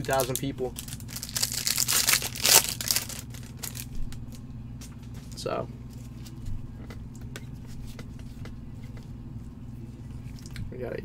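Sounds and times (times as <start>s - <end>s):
foil wrapper tearing and crinkling: 0.0s - 4.3s.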